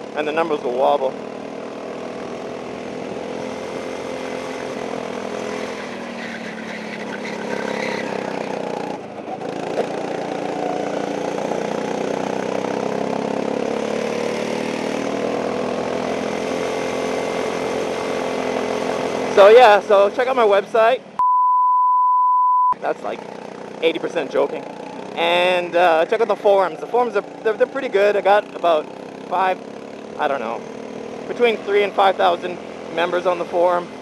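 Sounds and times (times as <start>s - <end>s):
go-kart engine running: 0.0s - 21.2s, 22.8s - 34.0s.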